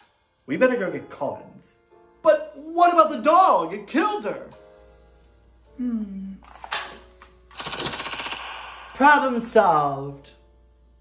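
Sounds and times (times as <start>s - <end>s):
rapid-fire gunfire: 7.6s - 9.3s.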